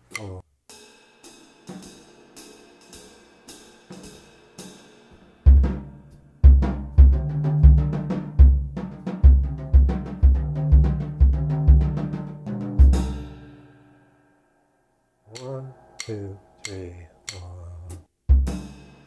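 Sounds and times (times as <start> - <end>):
jazz drum kit solo: 1.3 - 13.6, 15.4 - 19.0.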